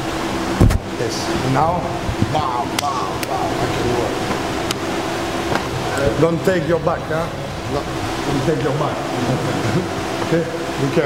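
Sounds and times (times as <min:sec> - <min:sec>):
rushing room noise: 0:00.0 - 0:11.0.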